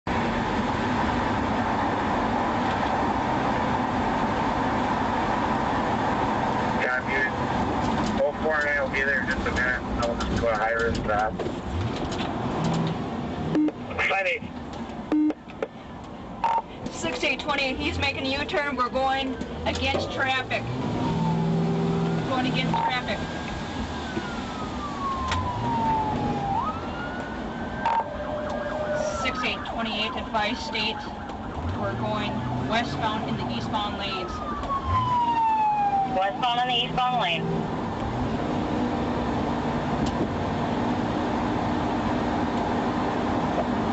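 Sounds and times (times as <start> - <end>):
car engine and road noise: 0.0 - 43.9
police radio voice: 6.8 - 7.4, 8.2 - 11.4, 13.8 - 14.5, 22.3 - 23.3, 31.8 - 34.5, 36.0 - 37.5
police siren wailing: 16.4 - 16.7, 17.7 - 40.0.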